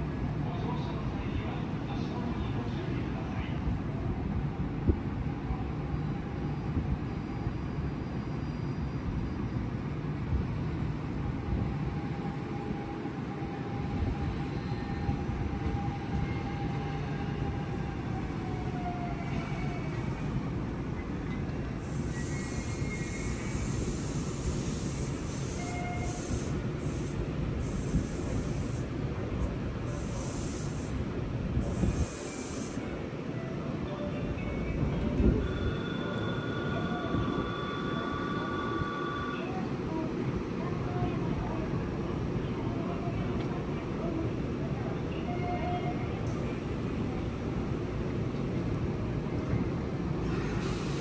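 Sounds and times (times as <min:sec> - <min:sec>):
train wheels rumbling on rails: 0:03.6 - 0:51.0.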